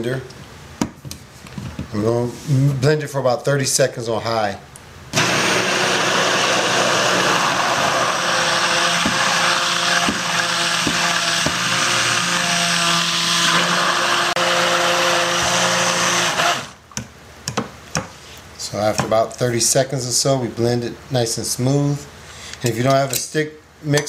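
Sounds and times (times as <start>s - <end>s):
stick blender running: 5.2s - 16.8s.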